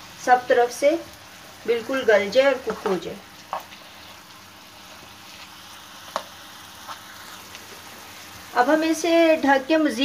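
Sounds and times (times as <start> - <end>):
meat sizzling in a frying pan: 0.0 - 10.0.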